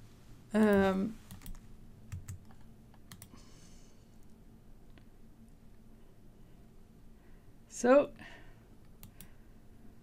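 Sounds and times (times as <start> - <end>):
computer keyboard keystrokes: 1.3 - 3.3, 9.0 - 9.3.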